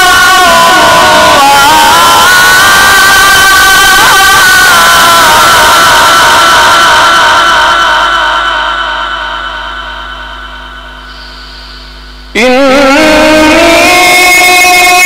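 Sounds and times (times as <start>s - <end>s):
quran recitation through loudspeaker: 0.0s - 15.0s.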